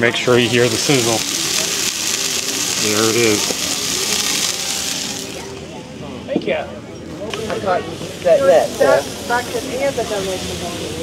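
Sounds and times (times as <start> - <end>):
patties sizzling on a griddle: 0.0 - 5.6, 7.3 - 11.0.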